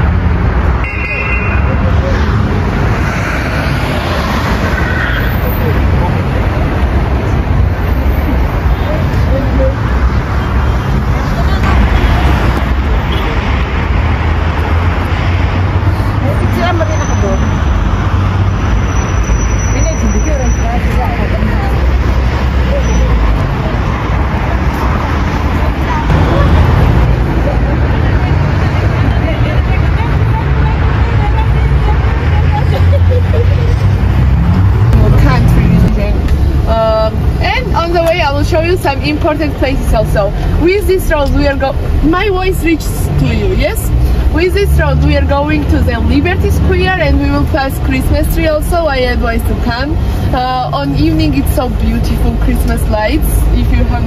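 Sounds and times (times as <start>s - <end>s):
traffic rumbling: 0.0s - 54.0s
people talking: 8.8s - 9.9s, 16.2s - 17.6s, 19.7s - 23.9s, 24.7s - 33.9s, 34.9s - 54.0s.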